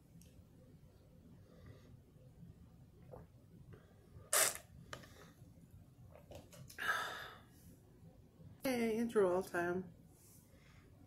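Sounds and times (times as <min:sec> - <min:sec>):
drinking through a straw: 0:04.3 - 0:04.6.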